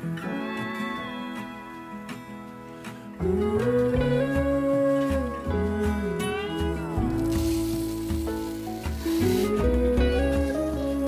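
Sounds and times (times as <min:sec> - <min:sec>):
background music: 0:00.0 - 0:11.0
lentils poured into blender jar: 0:07.1 - 0:09.8.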